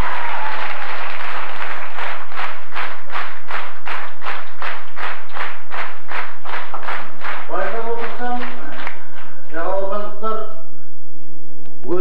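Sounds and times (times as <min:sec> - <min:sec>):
audience applauding: 0:00.0 - 0:09.4.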